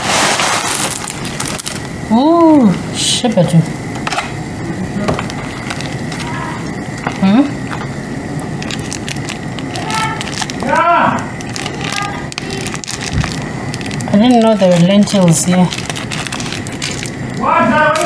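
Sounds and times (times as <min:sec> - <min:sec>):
pot boiling and bubbling: 0:00.0 - 0:18.0.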